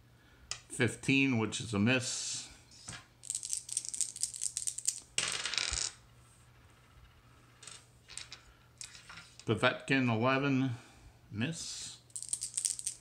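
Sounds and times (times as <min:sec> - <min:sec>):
dice rattling and clattering: 0:03.2 - 0:06.0, 0:07.6 - 0:09.4, 0:12.1 - 0:13.0.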